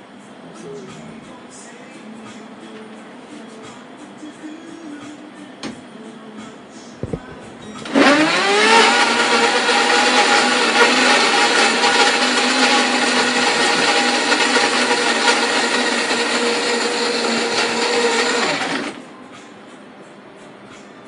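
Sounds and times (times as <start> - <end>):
electric blender whirring: 7.8 - 19.0.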